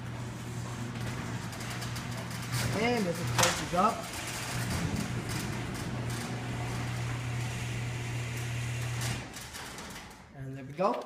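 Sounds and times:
garage door opener motor humming: 0.0 - 10.4.

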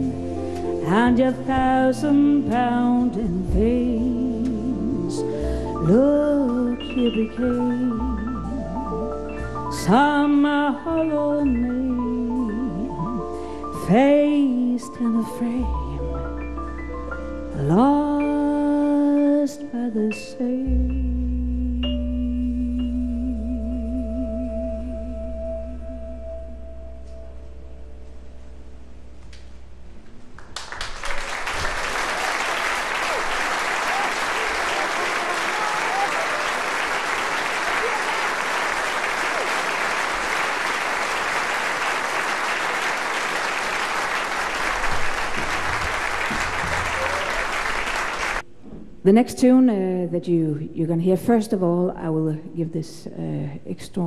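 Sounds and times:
audience applauding: 30.4 - 48.4.

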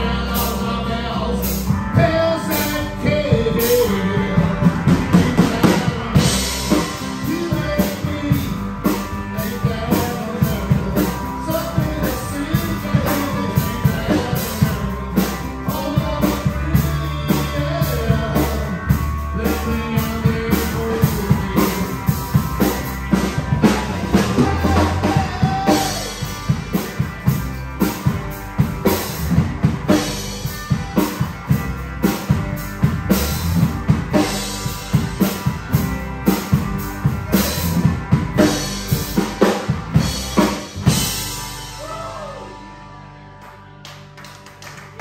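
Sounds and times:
rock band playing: 0.0 - 45.0.

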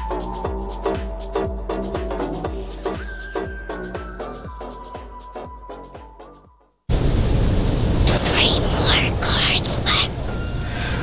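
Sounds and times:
music with steady beat: 0.0 - 6.6
loud static hiss: 6.9 - 11.0.

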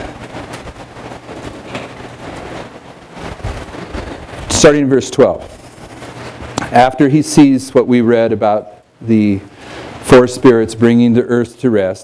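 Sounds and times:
thin pages rustling and turning: 0.0 - 6.6
low steady hum: 0.0 - 12.0.

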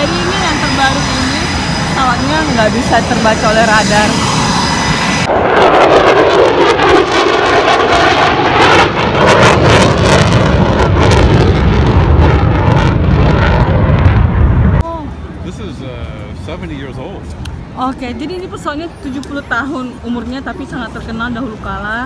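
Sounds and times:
fighter jet flying past: 0.0 - 14.8.

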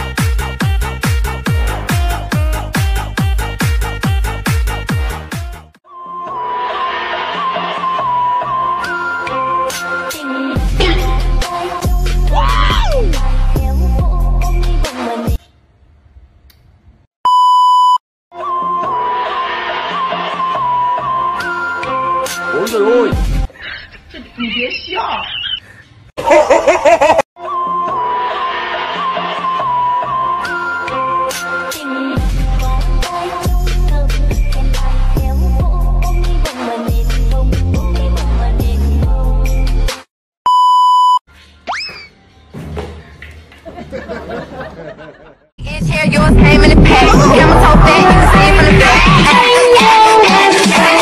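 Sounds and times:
music with a beat: 0.0 - 5.7, 46.0 - 51.0
high censor bleep: 17.3 - 18.0, 40.5 - 41.2
high electronic beep: 40.5 - 41.2.

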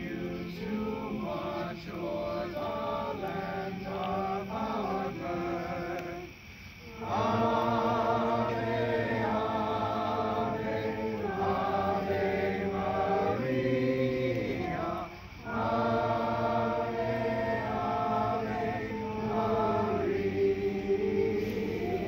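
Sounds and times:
men singing a hymn: 0.0 - 22.0.

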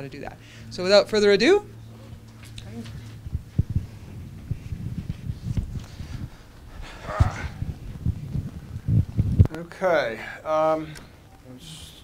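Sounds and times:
low electrical hum: 0.0 - 12.0
microphone handling thumps: 2.2 - 9.6.

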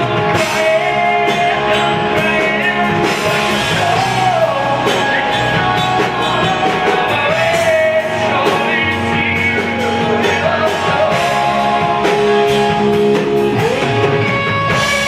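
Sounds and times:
drum kit: 0.0 - 15.0
electric guitars: 0.0 - 15.0
man singing: 0.0 - 15.0.

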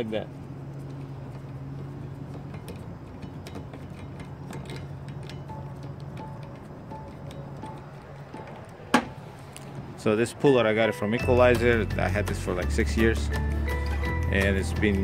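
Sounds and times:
small metallic clicks and clinks: 1.3 - 8.9
faint background music: 4.0 - 15.0.

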